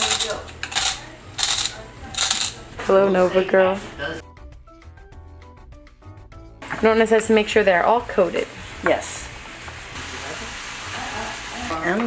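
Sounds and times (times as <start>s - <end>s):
pepper mill grinding: 0.0s - 2.6s.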